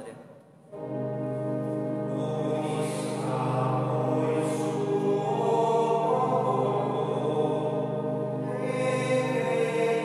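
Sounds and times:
church organ sustained chords: 0.7s - 10.0s.

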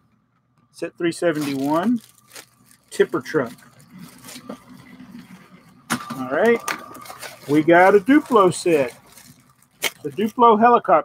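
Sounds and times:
plastic bags clicking: 1.3s - 10.5s.

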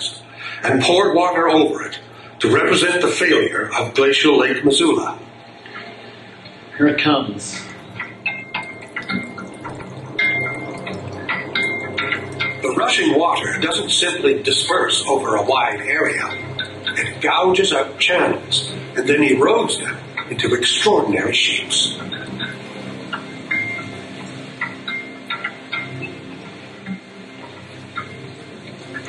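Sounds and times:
water rushing and splashing: 7.6s - 29.0s.

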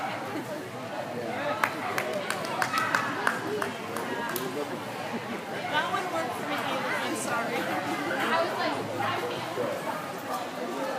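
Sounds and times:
background chatter: 0.0s - 10.9s.

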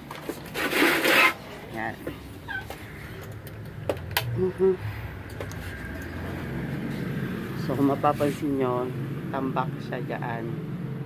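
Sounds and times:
small dog whimpering: 2.4s - 2.8s.

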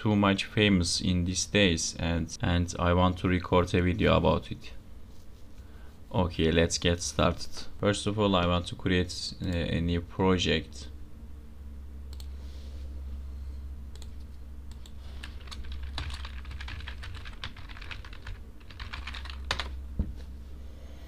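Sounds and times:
steady low hum: 0.0s - 21.0s
keyboard keys clicking: 14.7s - 19.7s.

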